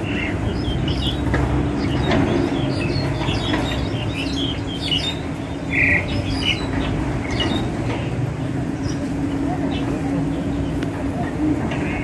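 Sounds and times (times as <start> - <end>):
songbird chirping: 0.0 - 11.1.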